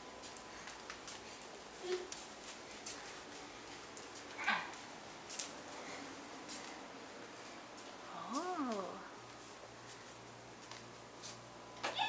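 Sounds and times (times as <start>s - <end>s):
bare feet slapping tile floor: 0.0s - 5.9s.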